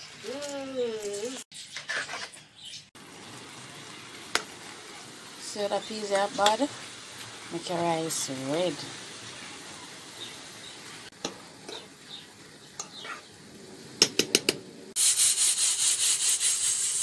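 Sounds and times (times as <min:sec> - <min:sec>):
steam hissing from a pot: 0:03.0 - 0:11.1, 0:14.9 - 0:17.0.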